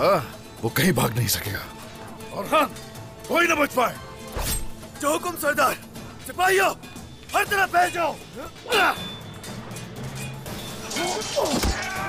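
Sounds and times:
dramatic score music: 0.0s - 12.0s
men shouting battle cries: 6.3s - 9.2s, 10.9s - 12.0s
falling yells: 10.9s - 12.0s.

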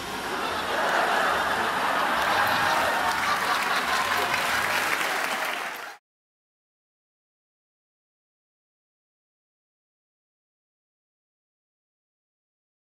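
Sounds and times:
audience applauding: 0.7s - 6.0s.

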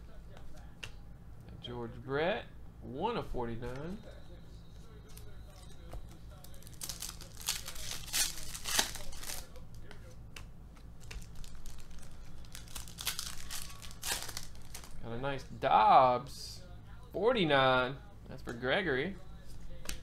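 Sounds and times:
foil wrappers crinkling and tearing: 5.1s - 9.7s, 11.0s - 15.0s.

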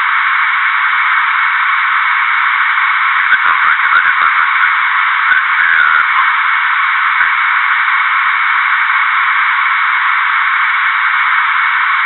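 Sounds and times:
steady static hiss: 0.0s - 12.0s.

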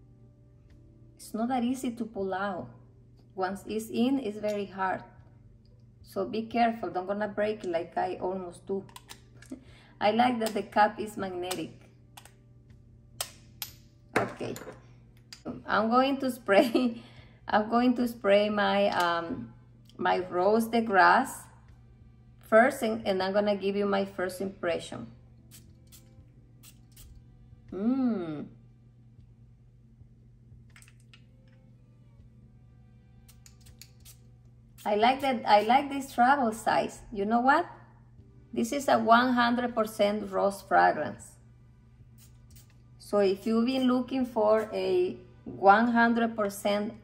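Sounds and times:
faint room hum: 0.0s - 47.0s
perfume atomizer spraying: 25.5s - 27.2s, 33.2s - 35.8s, 42.1s - 42.9s
bottle and cap clicking: 30.7s - 31.2s, 33.3s - 34.2s.

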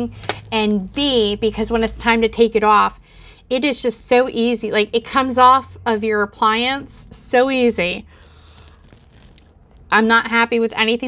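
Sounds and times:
woman speaking: 0.0s - 8.1s, 9.9s - 11.0s
plastic tube rustling: 8.0s - 10.1s.

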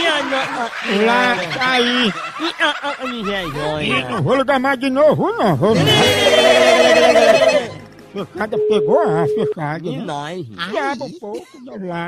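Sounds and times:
people snickering: 0.0s - 4.3s, 5.7s - 7.7s
people talking: 0.0s - 12.0s.

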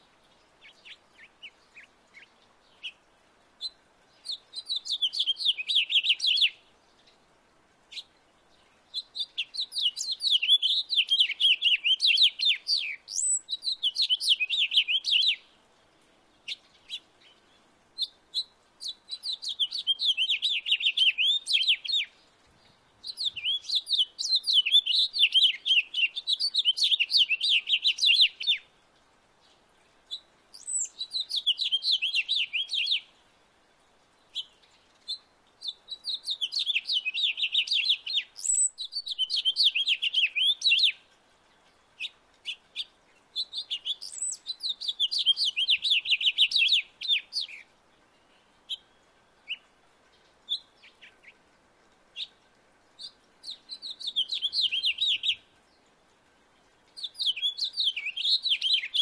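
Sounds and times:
finch singing high-pitched warbling: 53.4s - 55.4s, 57.0s - 59.0s.

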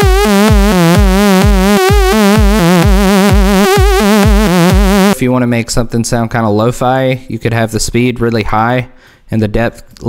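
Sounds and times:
synthesizer bassline with heavy vibrato: 0.0s - 5.2s.

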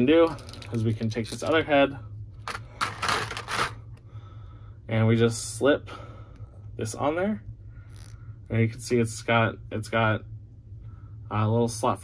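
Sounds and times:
plastic scraping and rubbing: 0.2s - 1.6s, 2.5s - 3.8s.

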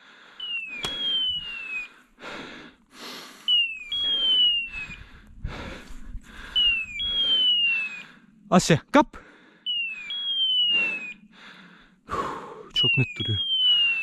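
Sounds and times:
falling electronic chirps: 0.4s - 2.0s, 3.4s - 5.1s, 6.4s - 8.2s, 9.7s - 11.3s, 12.7s - 14.0s.

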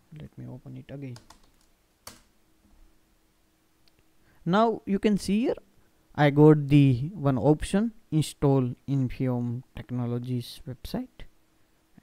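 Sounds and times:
keyboard keys clicking: 1.1s - 2.2s.

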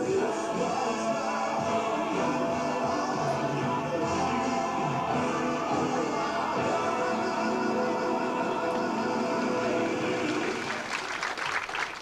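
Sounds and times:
audience applauding: 10.0s - 12.0s.

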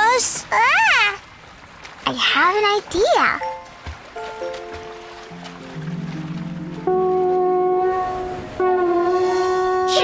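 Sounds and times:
shell horn blast: 6.8s - 10.0s.

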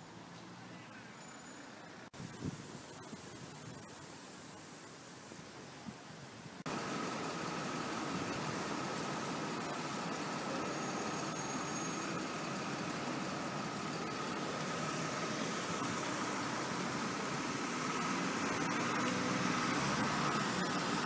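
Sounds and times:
traffic rumble and hiss: 0.0s - 21.0s.

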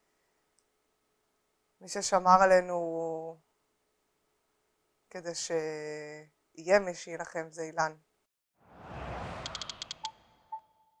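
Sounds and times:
whoosh: 8.6s - 10.5s.

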